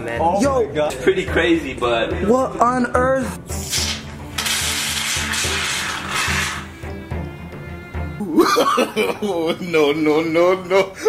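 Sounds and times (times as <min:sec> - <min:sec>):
aerosol can spraying: 0:03.5 - 0:06.8.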